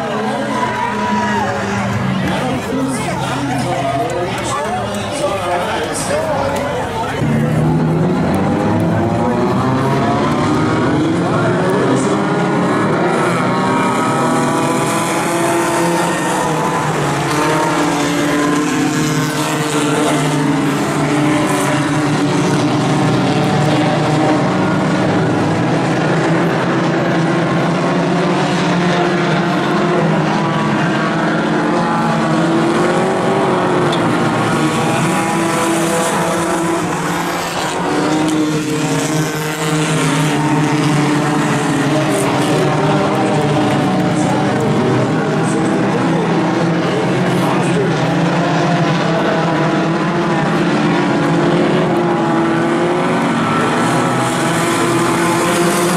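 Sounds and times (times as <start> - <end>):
race car engines revving: 0.0 - 55.9.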